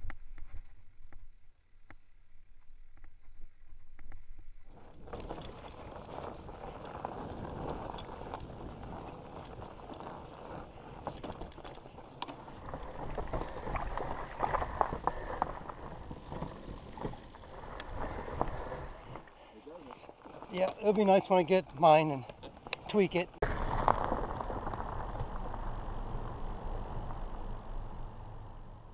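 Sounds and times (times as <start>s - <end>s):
bike knocking and rattling: 3.1s - 19.3s
wind rushing on camera: 3.7s - 19.3s, 22.4s - 28.9s
tyres rolling over dirt: 4.7s - 28.9s.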